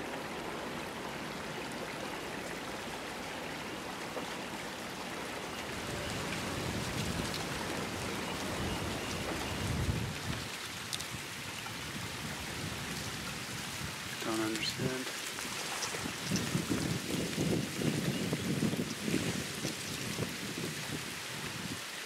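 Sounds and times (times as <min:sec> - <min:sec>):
creek water running: 0:00.0 - 0:22.0.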